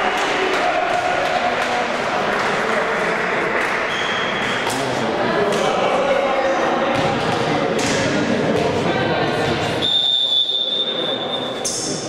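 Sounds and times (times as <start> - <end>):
referee's whistle blast: 9.8 - 11.5.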